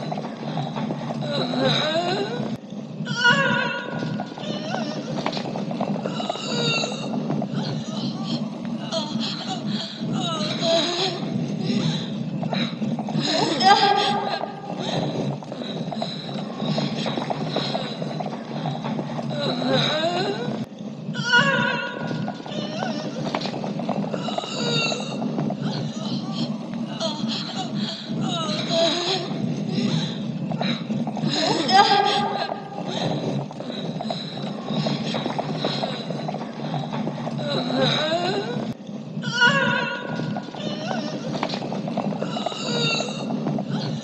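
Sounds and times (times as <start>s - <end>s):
horse hooves clopping on stone: 0.0s - 8.8s, 9.7s - 27.0s, 28.1s - 44.0s
film score with wavering high tones: 0.0s - 44.0s.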